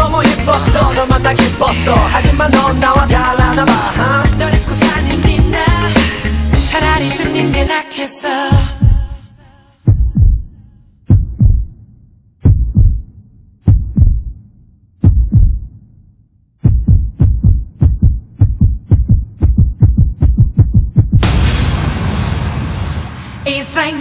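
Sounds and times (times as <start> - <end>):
heartbeat thumps: 8.6 - 9.2, 9.9 - 10.5, 11.1 - 15.9, 16.6 - 21.3.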